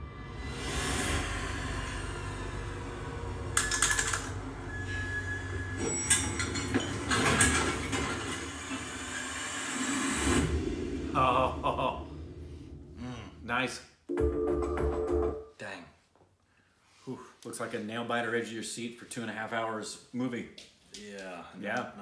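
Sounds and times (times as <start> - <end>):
steady low rumble: 0.0 - 4.7, 10.4 - 13.6.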